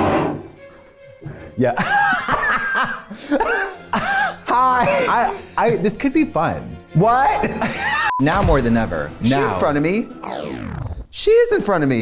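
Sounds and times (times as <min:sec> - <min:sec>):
person laughing: 0:01.8 - 0:05.4, 0:07.4 - 0:08.1.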